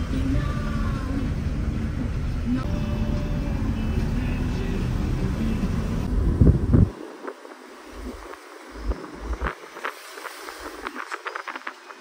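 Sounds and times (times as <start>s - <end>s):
car cabin road rumble: 0.0s - 12.0s
heavy low thumps: 2.6s - 7.0s.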